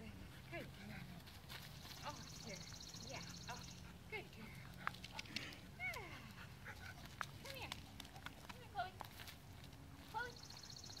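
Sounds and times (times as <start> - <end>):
footsteps on gravel: 7.4 - 10.4.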